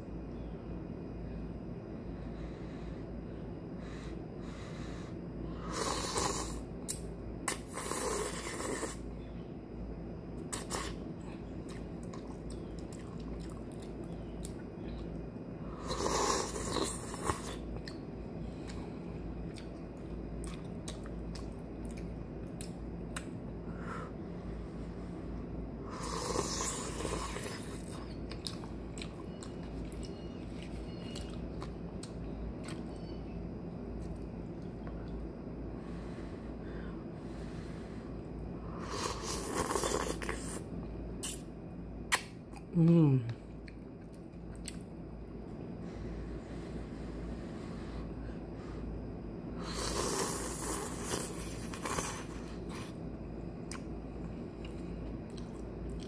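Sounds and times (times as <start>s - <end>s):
slurping noodles: 7.5s - 9.0s, 25.9s - 27.9s, 38.9s - 40.6s, 49.6s - 52.9s
chewing: 11.6s - 15.2s, 19.4s - 23.3s, 26.1s - 33.0s, 43.6s - 45.0s, 53.7s - 56.0s
wet mouth clicks: 41.2s - 41.5s, 42.1s - 42.7s.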